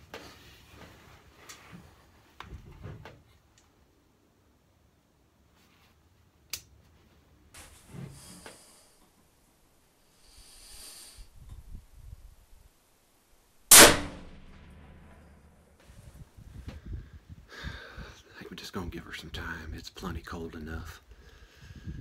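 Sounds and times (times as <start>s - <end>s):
rifle shot: 13.7s - 15.7s.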